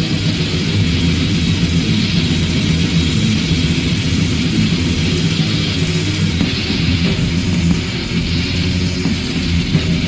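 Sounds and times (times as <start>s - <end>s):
metal music with distorted guitars: 0.0s - 10.0s.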